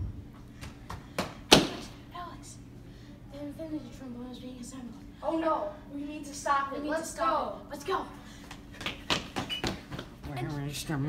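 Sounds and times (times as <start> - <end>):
hurried footsteps on hard floor: 8.5 - 10.5.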